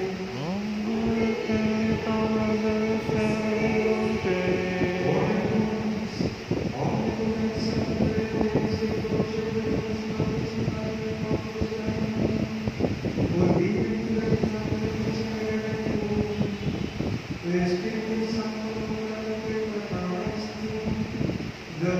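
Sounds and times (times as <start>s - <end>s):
slow hymn sung in church: 0.0s - 21.9s.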